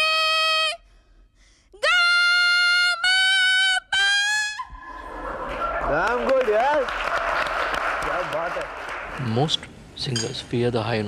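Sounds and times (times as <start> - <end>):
applause: 5.5 - 9.5.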